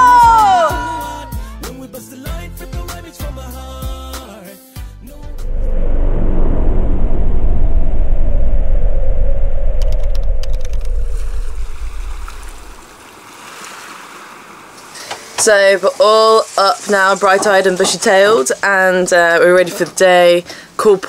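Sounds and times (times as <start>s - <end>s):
wind on microphone: 5.1s - 13.0s
sea rushing past boat: 5.2s - 15.4s.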